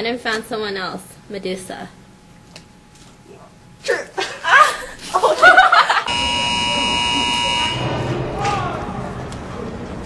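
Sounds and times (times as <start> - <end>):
electronic buzzer tone: 6.1 - 8.3.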